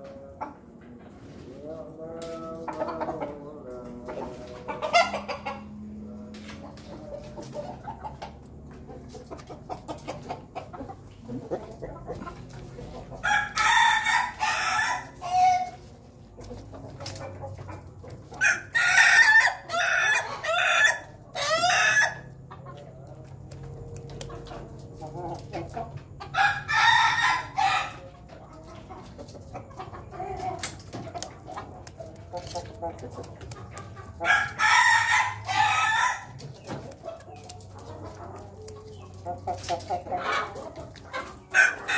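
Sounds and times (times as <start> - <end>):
rooster crowing: 13.2 - 15.7, 26.3 - 28.0, 34.3 - 36.3.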